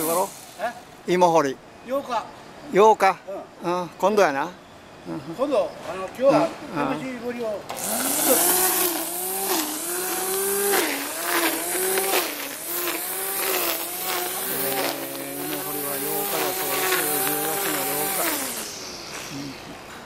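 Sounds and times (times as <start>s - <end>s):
hiss of cut grass: 0.0s - 0.9s, 7.7s - 20.0s
electric string trimmer whining: 7.7s - 20.0s.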